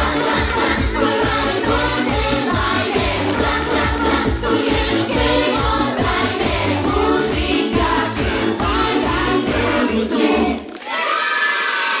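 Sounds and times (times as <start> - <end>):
children's pop song: 0.0 - 10.7
children cheering and shouting: 10.8 - 12.0.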